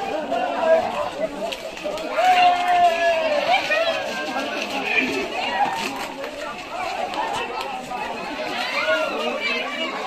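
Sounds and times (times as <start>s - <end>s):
crowd chattering and calling out: 0.0s - 10.0s.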